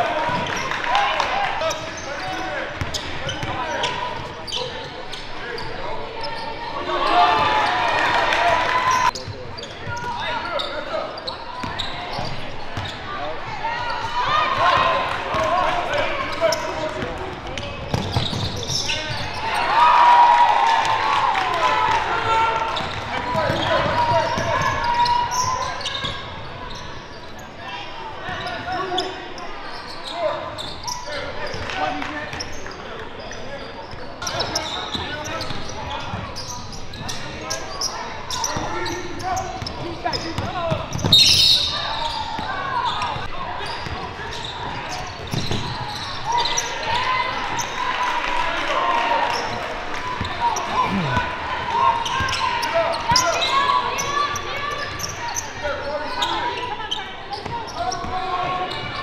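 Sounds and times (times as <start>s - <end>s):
players and spectators shouting: 0.0s - 9.2s, 9.9s - 17.0s, 45.7s - 56.7s
referee's whistle: 41.1s - 42.2s.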